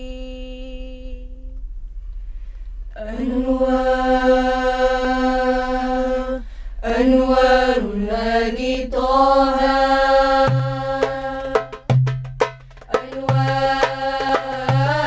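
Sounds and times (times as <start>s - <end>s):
girls singing in unison: 3.0s - 11.8s, 12.9s - 15.0s.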